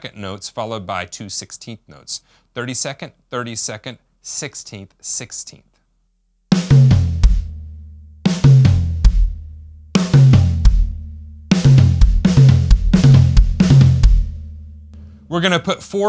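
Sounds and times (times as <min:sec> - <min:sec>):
drum kit fill: 0:06.5 - 0:15.6.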